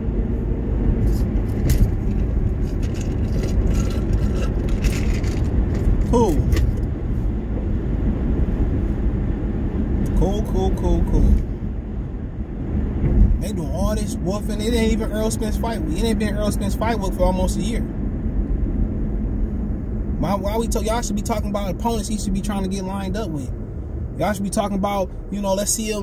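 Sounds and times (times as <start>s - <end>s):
car road and engine rumble: 0.0s - 26.0s
man talking: 6.1s - 6.6s, 10.1s - 11.4s, 13.4s - 17.9s, 20.2s - 23.5s, 24.2s - 26.0s.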